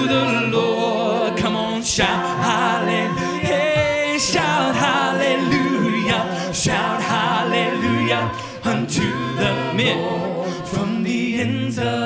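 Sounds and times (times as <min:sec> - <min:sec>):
choir singing a cappella: 0:00.0 - 0:12.0.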